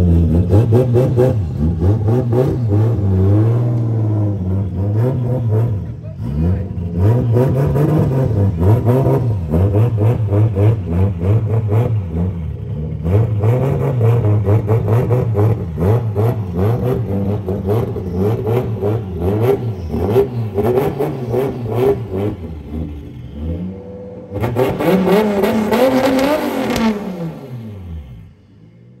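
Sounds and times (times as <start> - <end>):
car engine throttle blips: 0.0 - 28.5.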